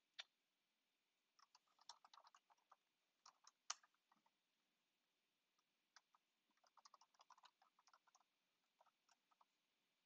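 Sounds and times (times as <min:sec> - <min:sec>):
computer keyboard typing: 0:01.4 - 0:04.4, 0:05.9 - 0:09.6.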